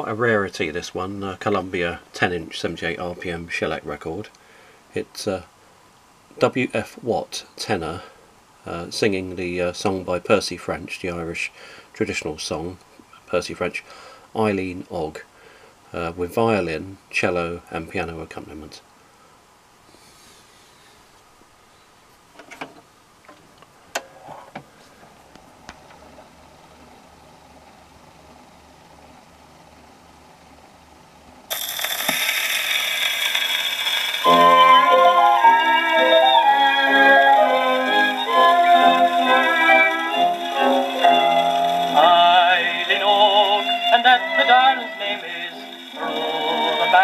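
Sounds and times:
record surface noise hiss: 0:00.0 - 0:47.0
violin cello and piano music: 0:34.3 - 0:42.3.

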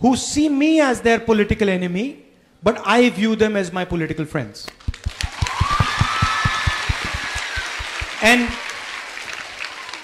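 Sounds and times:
audience applauding: 0:04.8 - 0:10.0.

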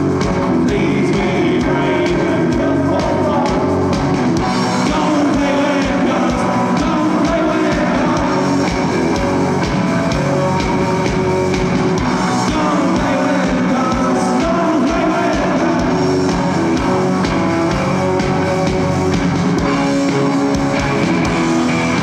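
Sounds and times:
bass guitar: 0:00.0 - 0:22.0
distorted electric guitars: 0:00.0 - 0:22.0
drums with steady kick beat: 0:00.0 - 0:22.0.

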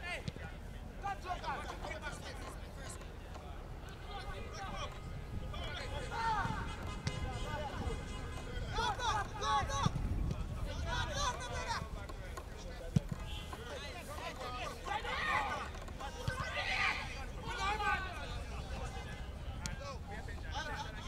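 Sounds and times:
people shouting: 0:14.9 - 0:18.1.

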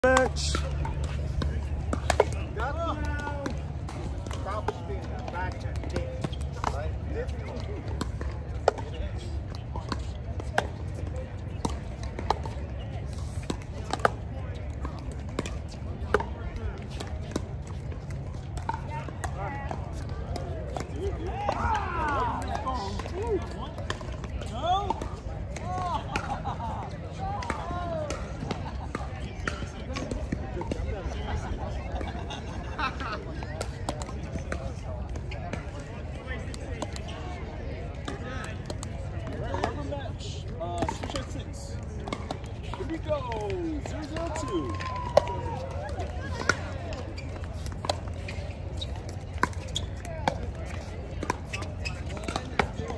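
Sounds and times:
players' voices: 0:00.0 - 0:52.9.

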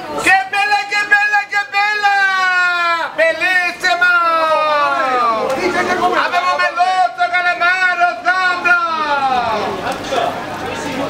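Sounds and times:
overlapping voices and chatter: 0:00.0 - 0:11.0.

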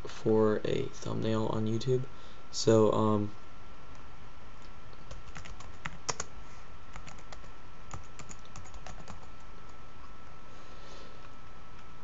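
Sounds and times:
computer keyboard typing: 0:05.1 - 0:06.3, 0:06.9 - 0:09.4.

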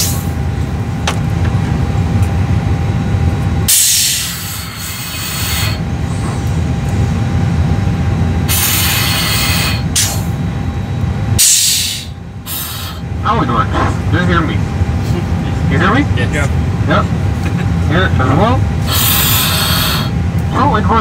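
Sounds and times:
steady low rumble: 0:00.0 - 0:21.0
oxygen mask hissing: 0:03.7 - 0:05.8, 0:08.5 - 0:10.3, 0:11.4 - 0:13.0, 0:18.8 - 0:20.1.

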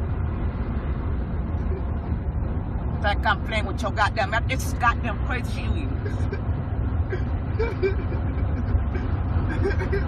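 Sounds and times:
car engine and road noise: 0:00.0 - 0:10.0
person laughing: 0:07.1 - 0:10.0.

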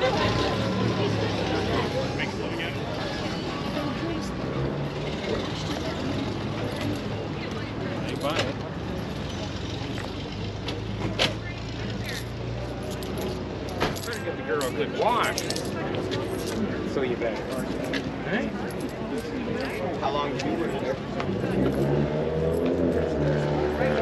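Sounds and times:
distant people talking: 0:00.0 - 0:24.0
vehicle engine hum: 0:00.0 - 0:24.0.

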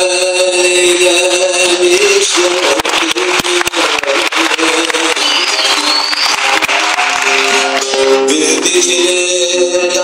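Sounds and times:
hall and audience noise: 0:00.0 - 0:10.0.

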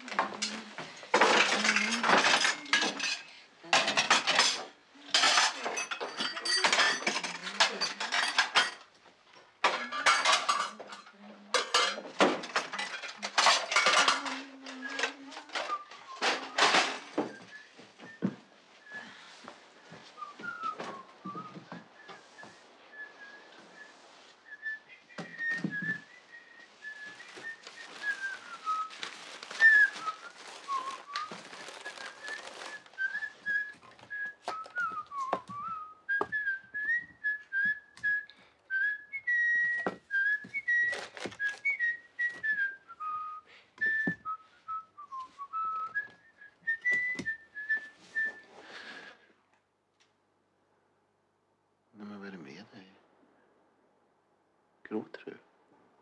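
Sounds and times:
objects knocking and clicking: 0:11.6 - 0:17.5
person whistling a tune: 0:14.8 - 0:49.1
paper rustling: 0:26.0 - 0:35.4, 0:40.2 - 0:41.8.

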